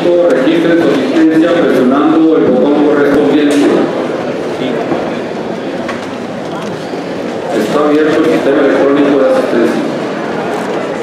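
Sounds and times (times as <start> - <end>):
murmur of many people talking: 0.0 - 11.0.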